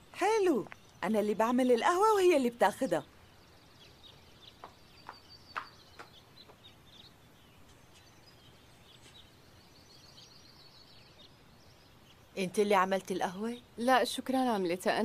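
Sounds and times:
birds chirping softly: 0:00.0 - 0:15.0
light taps: 0:04.6 - 0:06.7.

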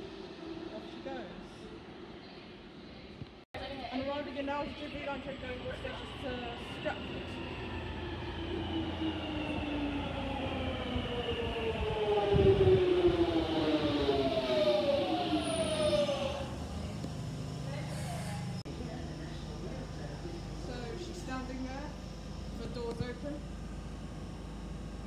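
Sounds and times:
train braking to a stop: 0:04.8 - 0:23.3
traction motor whine: 0:05.4 - 0:25.0.

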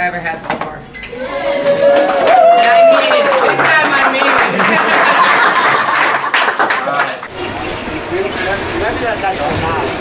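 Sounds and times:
group clapping and cheering: 0:01.2 - 0:07.3
train car rumble: 0:07.3 - 0:10.0.

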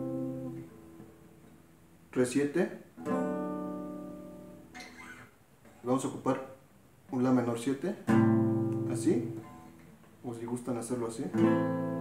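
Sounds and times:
acoustic guitar chord ringing: 0:00.0 - 0:01.3, 0:03.0 - 0:05.2, 0:08.1 - 0:09.8.

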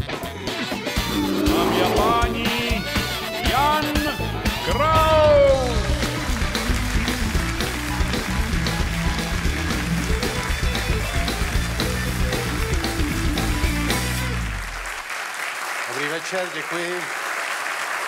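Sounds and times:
live band playing: 0:00.8 - 0:14.5
audience applause: 0:05.6 - 0:13.0, 0:14.4 - 0:18.0.

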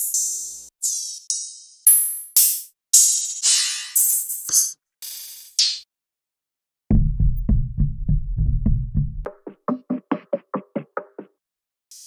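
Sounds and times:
rhythmic percussion knocks: 0:06.9 - 0:11.4.

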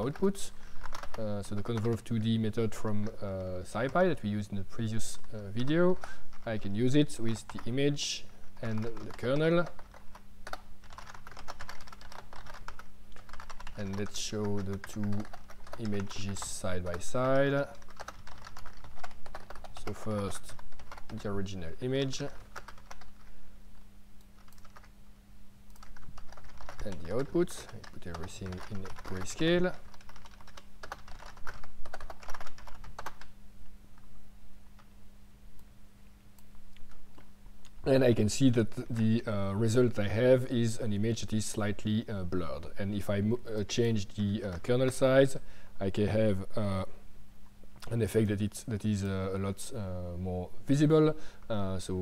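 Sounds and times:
computer keyboard typing: 0:00.0 - 0:02.1, 0:05.1 - 0:06.7, 0:07.3 - 0:07.8, 0:08.6 - 0:21.4, 0:22.0 - 0:23.3, 0:24.4 - 0:24.9, 0:25.7 - 0:33.3.

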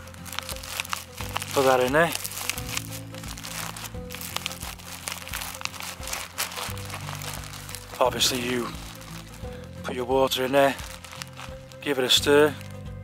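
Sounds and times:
plastic bag crinkling: 0:00.0 - 0:12.9
background music with low notes: 0:00.0 - 0:13.0.

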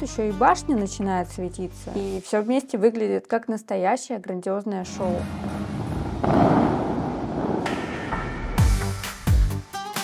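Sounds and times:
loud rushing noise: 0:04.9 - 0:08.6.

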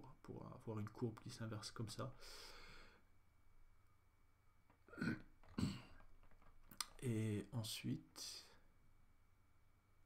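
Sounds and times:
short throat sounds: 0:04.8 - 0:06.0
man coughing: 0:04.9 - 0:06.0.

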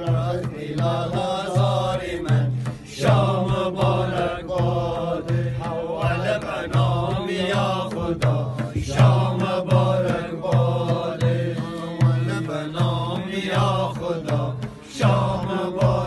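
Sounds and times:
frame drum beat: 0:00.0 - 0:16.0
men singing in unison: 0:00.0 - 0:16.0.

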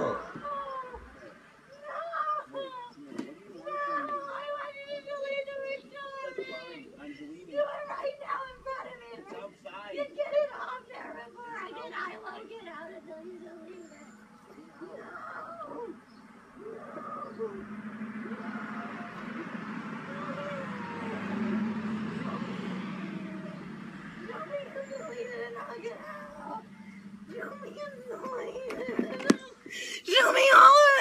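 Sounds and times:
steady low hum: 0:14.2 - 0:28.6.

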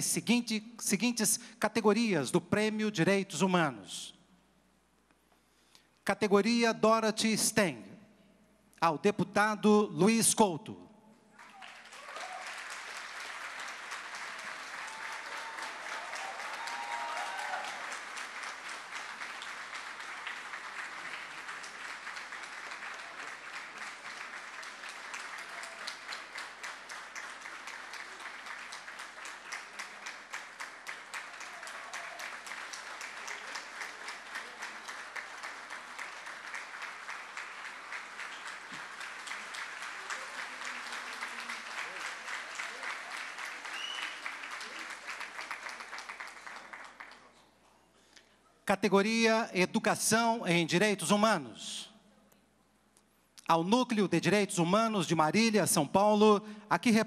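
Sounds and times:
audience applause: 0:11.4 - 0:47.4.

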